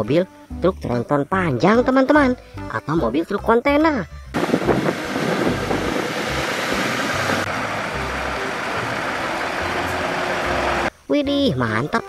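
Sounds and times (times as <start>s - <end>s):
truck engine and road noise: 4.3s - 10.9s
wind on microphone: 4.4s - 7.5s.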